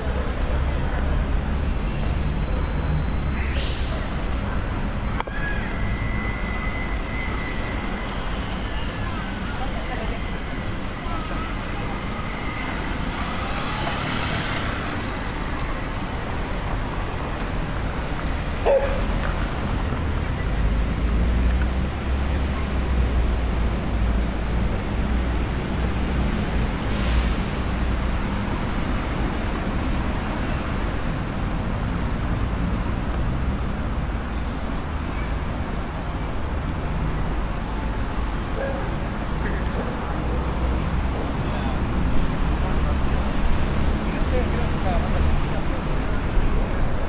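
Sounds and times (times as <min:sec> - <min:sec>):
passing cars traffic: 0:00.0 - 0:47.0.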